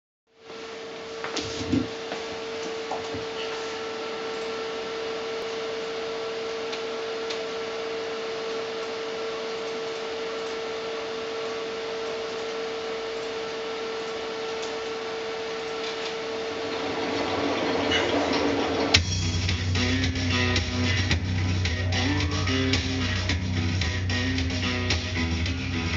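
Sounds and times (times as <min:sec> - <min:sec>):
mid-pitched electrical hum: 0:00.3 - 0:25.9
backing music: 0:18.8 - 0:25.9.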